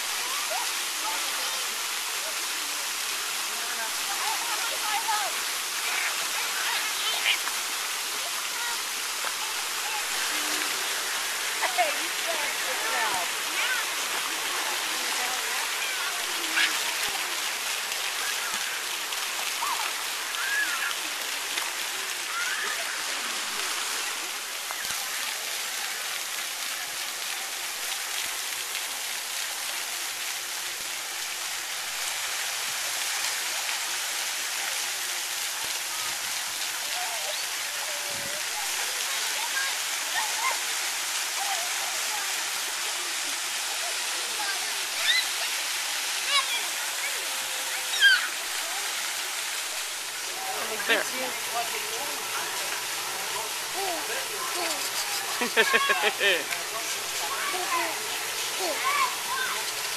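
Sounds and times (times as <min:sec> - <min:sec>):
water splashing in a pool: 0:00.0 - 0:59.9
children calling out: 0:15.6 - 0:21.2, 0:22.1 - 0:23.8, 0:36.9 - 0:42.1, 0:44.4 - 0:49.6, 0:53.5 - 0:59.9.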